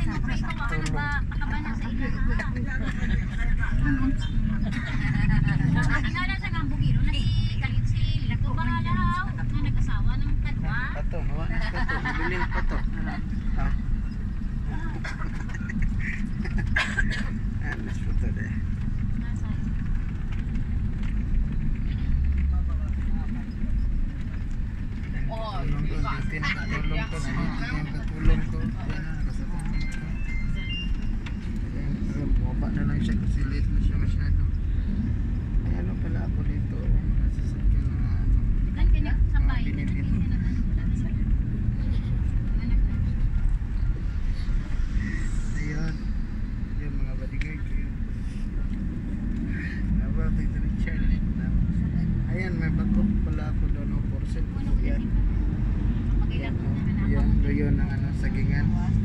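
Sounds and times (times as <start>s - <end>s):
vehicle engine rumble: 0.0s - 59.0s.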